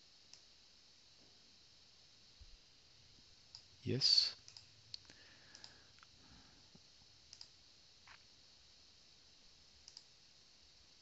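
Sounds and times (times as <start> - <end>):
computer mouse clicks: 4.4 - 6.1, 7.3 - 8.2, 9.8 - 10.1.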